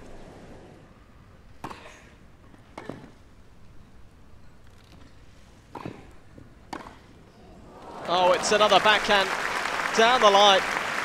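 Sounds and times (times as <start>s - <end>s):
tennis racket striking ball: 6.7s - 7.1s.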